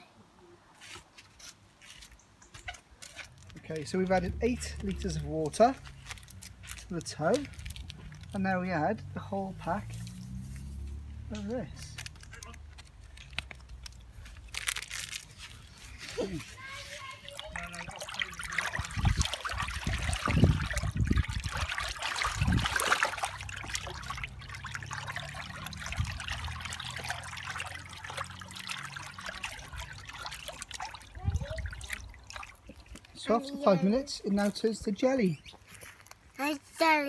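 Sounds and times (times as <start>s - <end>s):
hands sloshing water in tub: 9.6s - 11.6s, 15.8s - 33.4s.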